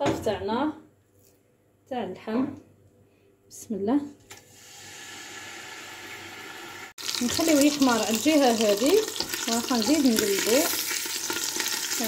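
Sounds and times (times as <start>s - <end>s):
meat sizzling in hot oil: 4.6s - 12.0s.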